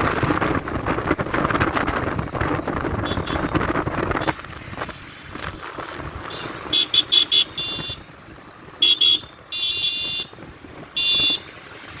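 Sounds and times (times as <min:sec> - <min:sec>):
road and wind noise: 0:00.0 - 0:12.0
vehicle horn honking: 0:03.0 - 0:03.5, 0:06.3 - 0:08.1, 0:08.8 - 0:11.5.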